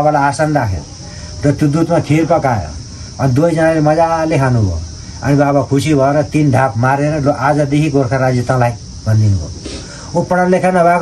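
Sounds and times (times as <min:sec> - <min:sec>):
man speaking: 0:00.0 - 0:11.0
steady high hiss: 0:00.0 - 0:11.0.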